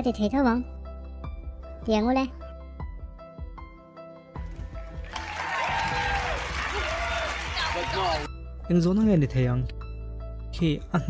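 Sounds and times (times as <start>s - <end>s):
audience applause: 4.4s - 8.3s.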